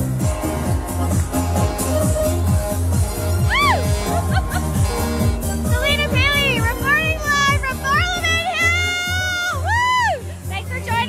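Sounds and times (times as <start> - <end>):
dance music with kick drum: 0.0 - 11.0.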